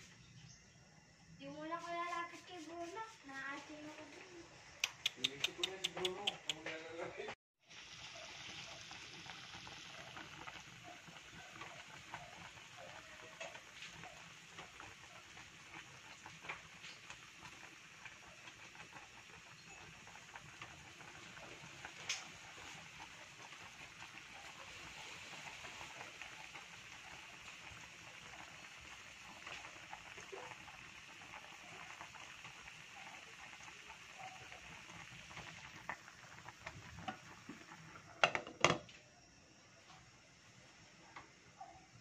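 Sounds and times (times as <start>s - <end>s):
soup boiling in a pot: 7.6s - 39.3s.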